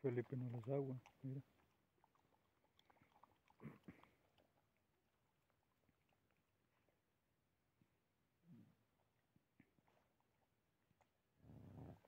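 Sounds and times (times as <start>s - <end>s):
dogs eating from a tray: 0.0s - 7.1s.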